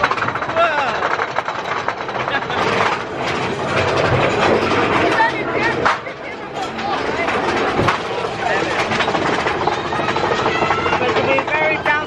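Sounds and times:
roller coaster rattling on rails: 0.0s - 12.0s.

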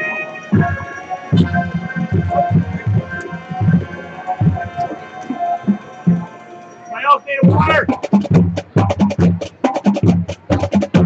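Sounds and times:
held wind chords: 0.0s - 11.0s
sliding voice-like sound: 7.0s - 7.9s.

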